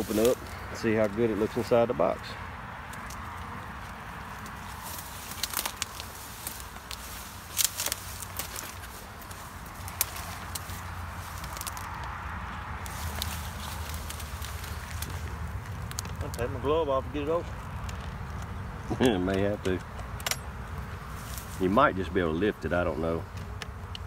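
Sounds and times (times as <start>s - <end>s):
footsteps in grass: 0.0s - 2.2s, 2.8s - 18.6s, 20.0s - 21.8s
low outdoor rumble: 0.0s - 24.0s
sharp clicks and crackles: 4.4s - 12.2s, 12.8s - 16.6s, 17.5s - 20.5s.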